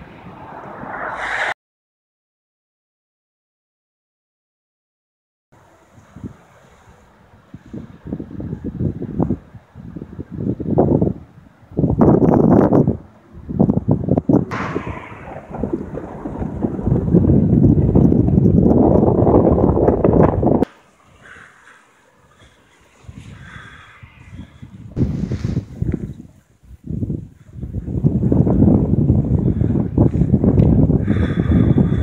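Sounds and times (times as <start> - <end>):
wind buffeting microphone: 6.0 - 21.5, 22.4 - 32.0.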